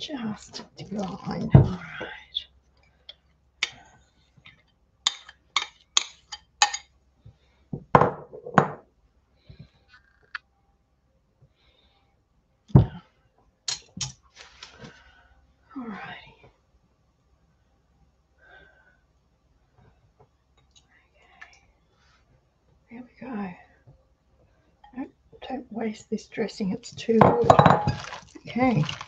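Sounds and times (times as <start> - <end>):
spatula scraping glass bowl: 27.2 - 29.0.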